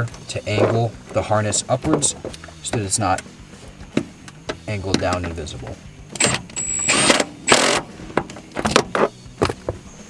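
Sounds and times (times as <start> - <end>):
cordless driver spinning: 6.2 - 7.9.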